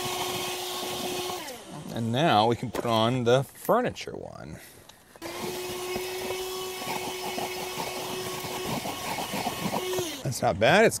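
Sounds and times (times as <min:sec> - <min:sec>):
handheld vacuum whining: 0:00.0 - 0:03.1, 0:05.2 - 0:10.3.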